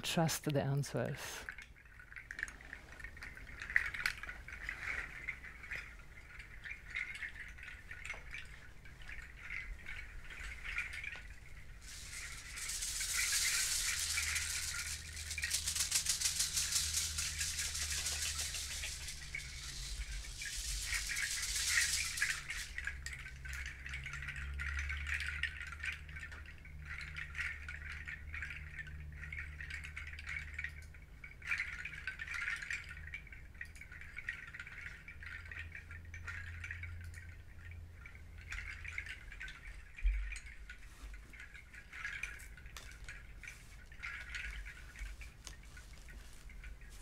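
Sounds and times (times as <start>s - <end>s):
rattle of dried pods: 1.4s - 47.0s.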